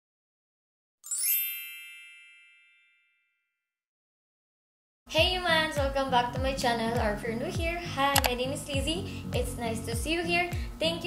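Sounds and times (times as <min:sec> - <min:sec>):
bright bell-like chime: 0:01.0 - 0:03.6.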